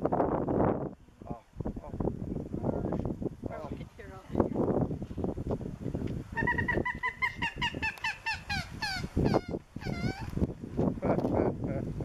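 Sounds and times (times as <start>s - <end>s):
wind noise on microphone: 0.0s - 12.0s
bird calling: 6.3s - 10.4s.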